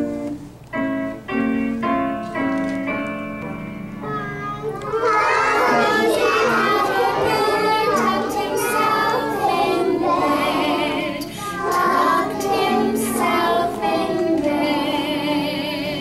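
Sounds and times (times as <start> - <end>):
musical backing notes: 0.0 - 16.0
children singing in unison: 4.8 - 16.0.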